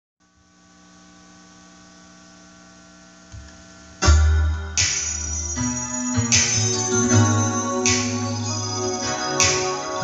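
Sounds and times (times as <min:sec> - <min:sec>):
electrical mains hum: 0:00.2 - 0:05.6.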